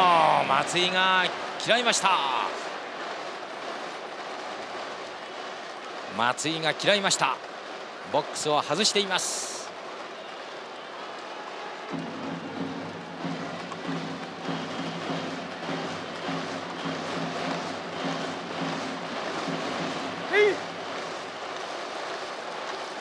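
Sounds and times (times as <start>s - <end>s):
loud call above crowd: 0.0s - 23.0s
stadium crowd: 0.0s - 23.0s
rhythmic music and chanting: 11.8s - 23.0s.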